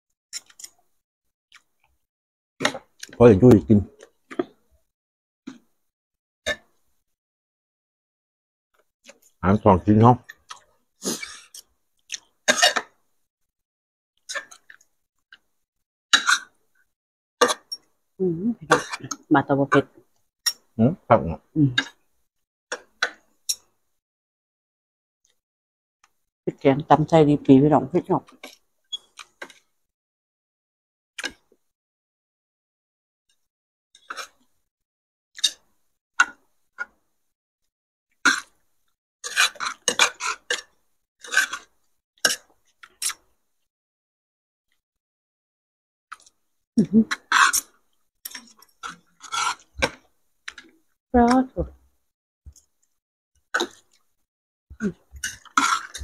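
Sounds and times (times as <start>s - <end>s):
person speaking: 3.1s - 3.9s.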